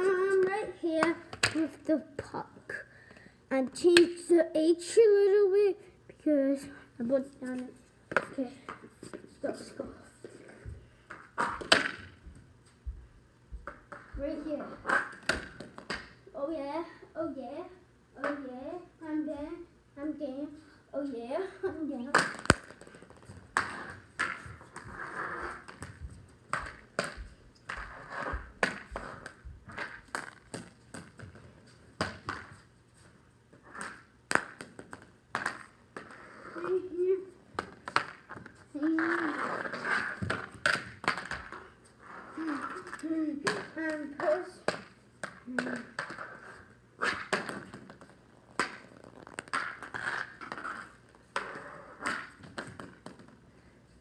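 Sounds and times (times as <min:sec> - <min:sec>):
hockey stick clacking puck: 0:00.0 - 0:02.3, 0:11.1 - 0:12.2, 0:22.0 - 0:31.4, 0:33.6 - 0:36.8, 0:37.6 - 0:41.7, 0:42.4 - 0:53.4.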